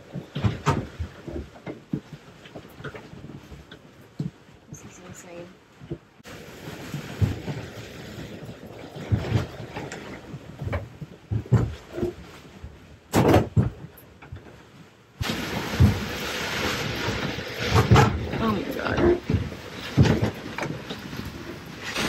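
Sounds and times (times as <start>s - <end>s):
boat knocking and thumping: 0.0s - 22.0s.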